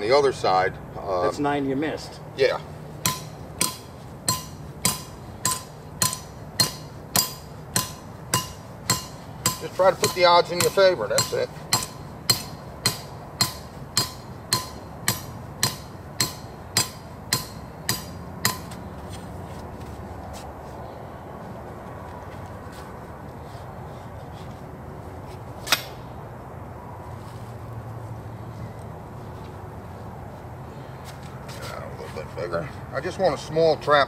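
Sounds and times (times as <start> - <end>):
hammer striking stake: 3.0 - 18.8.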